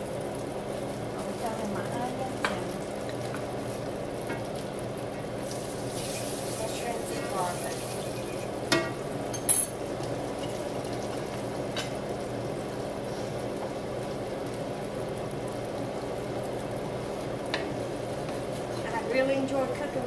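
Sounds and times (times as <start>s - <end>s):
onions sizzling in a skillet: 0.0s - 20.0s.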